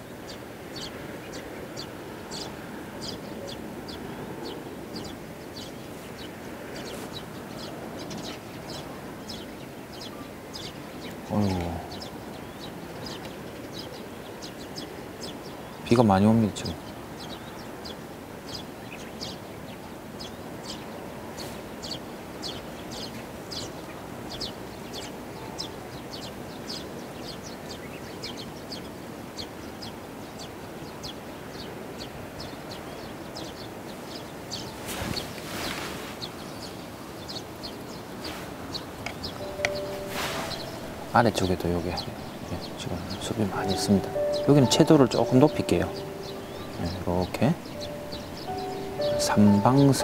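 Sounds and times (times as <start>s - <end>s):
small birds chirping: 0.0s - 50.0s
rain hissing: 39.5s - 44.3s.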